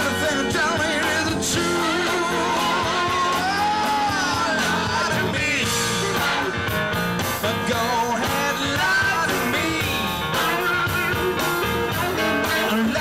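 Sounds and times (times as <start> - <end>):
blues-rock band playing: 0.0 - 13.0
man singing lead vocal: 0.0 - 13.0.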